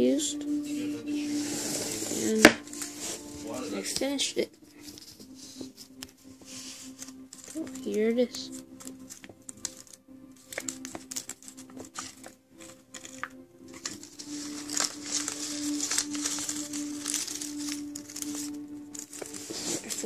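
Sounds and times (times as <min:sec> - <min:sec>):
steady low tone: 0:00.0 - 0:10.8
paper rustling and crinkling: 0:01.1 - 0:04.1, 0:04.7 - 0:20.0.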